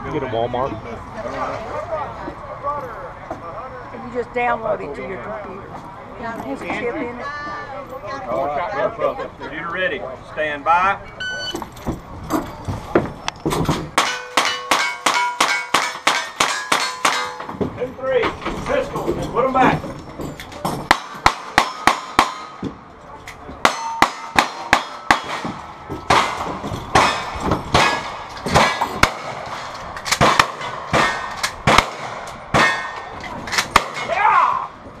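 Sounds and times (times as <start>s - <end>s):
steel plates clanging: 14.0s - 17.6s, 23.7s - 31.6s
rapid gunshots: 30.2s - 32.9s.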